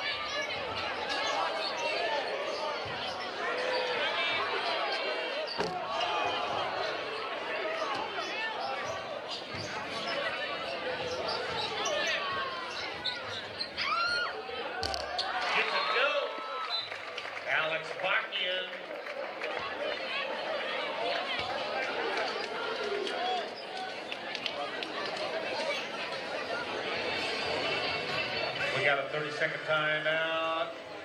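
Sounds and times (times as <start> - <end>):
crowd chatter and shouts: 0.0 - 31.0
basketball bouncing on court: 14.8 - 15.4.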